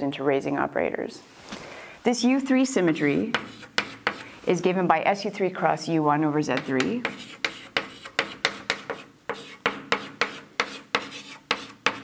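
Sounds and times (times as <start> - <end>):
chalk writing on a blackboard: 3.3 - 4.3, 6.6 - 12.0.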